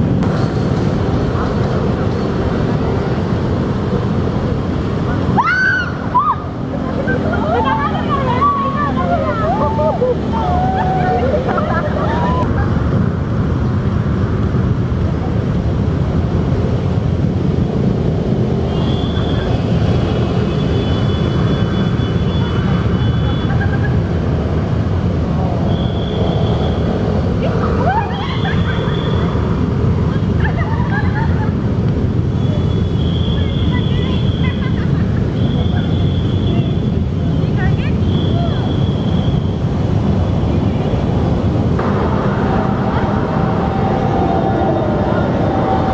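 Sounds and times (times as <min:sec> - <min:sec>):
traffic rumble: 0:00.0 - 0:45.9.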